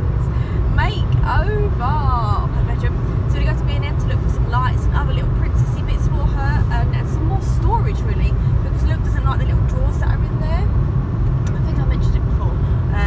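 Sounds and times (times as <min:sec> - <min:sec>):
voices: 0:00.0 - 0:10.7, 0:11.5 - 0:13.0
car cabin road rumble: 0:00.0 - 0:13.0.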